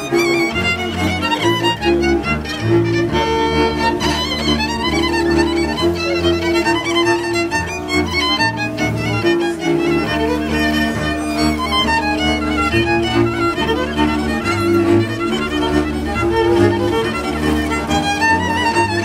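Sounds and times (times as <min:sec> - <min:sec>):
bowed double bass: 0:00.0 - 0:19.0
violins playing melody: 0:00.0 - 0:19.0.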